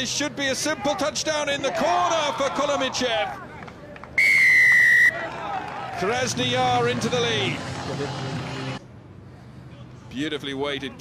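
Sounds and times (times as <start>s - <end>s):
referee's whistle blast: 4.2s - 5.2s.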